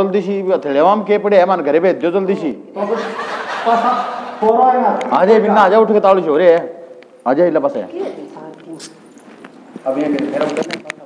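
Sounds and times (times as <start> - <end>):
person speaking: 9.8 - 11.0.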